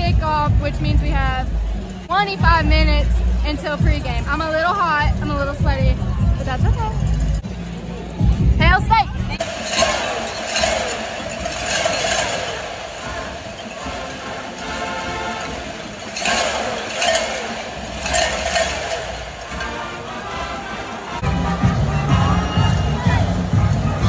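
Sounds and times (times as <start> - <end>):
cowbells clanging: 0.8 - 7.5, 9.4 - 21.2.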